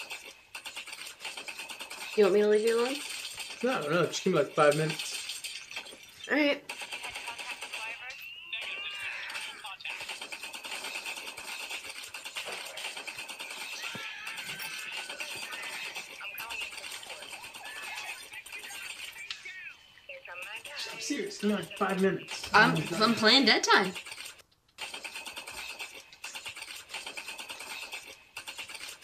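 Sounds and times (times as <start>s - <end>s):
game voices: 6.2s - 11.8s, 12.4s - 24.0s.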